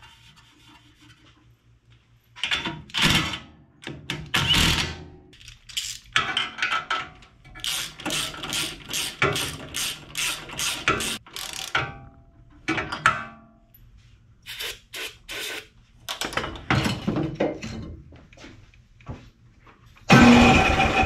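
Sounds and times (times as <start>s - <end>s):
socket ratchet clicking: 7.6s - 11.8s.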